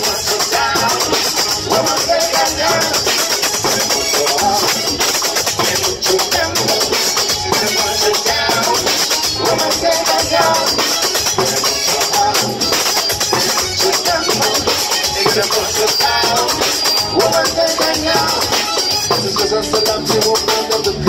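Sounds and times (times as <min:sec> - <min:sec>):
congas: 0:00.0 - 0:21.0
electric guitar: 0:00.0 - 0:21.0
melodic voices or instruments: 0:00.0 - 0:21.0
metal shaker rhythm: 0:00.0 - 0:21.0.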